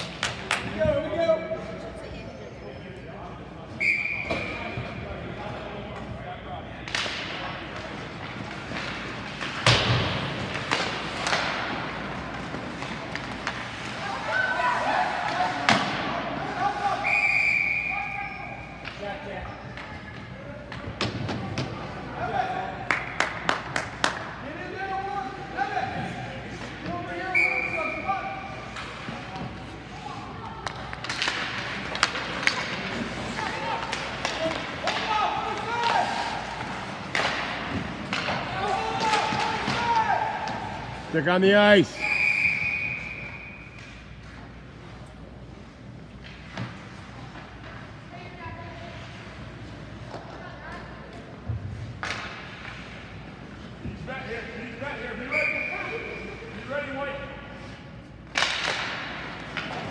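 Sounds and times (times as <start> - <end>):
referee's whistle blast: 3.8 - 4.6, 41.9 - 43.6, 55.3 - 56.1
sticks and puck hitting boards: 6.8 - 16.6, 30.5 - 41.1, 51.5 - 53.2, 58.2 - 59.9.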